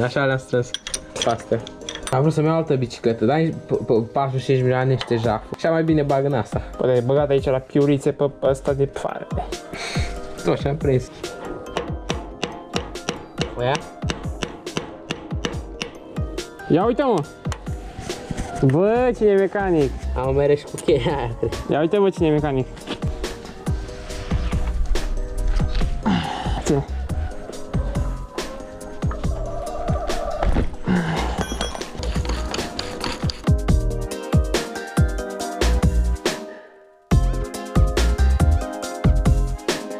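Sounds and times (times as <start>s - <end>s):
electronic music with deep bass: 15.4s - 36.3s, 37.1s - 39.9s.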